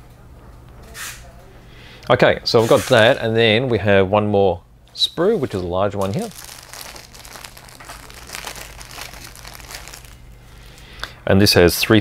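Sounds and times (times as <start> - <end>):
plastic bag crinkling: 5.2 - 11.0.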